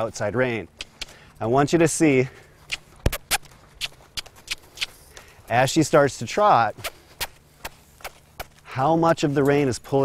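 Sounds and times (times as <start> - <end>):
footsteps on dirt: 0.0 - 10.0
horse hooves on dirt: 0.0 - 10.0.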